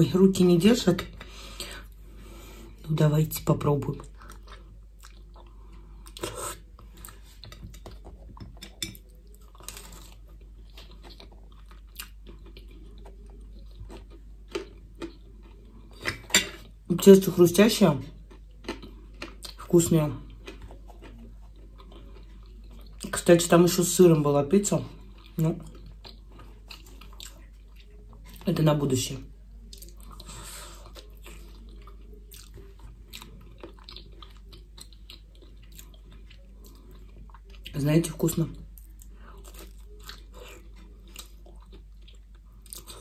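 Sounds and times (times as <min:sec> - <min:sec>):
chewing crisp pizza: 0:00.2 - 0:43.0.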